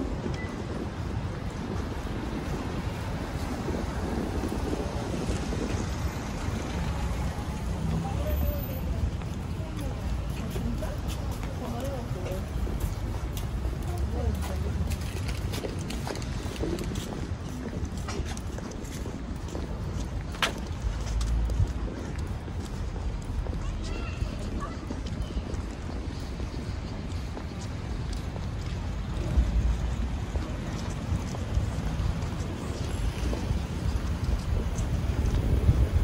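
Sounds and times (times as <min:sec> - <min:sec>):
footsteps on brick paving: 0:00.0 - 0:36.0.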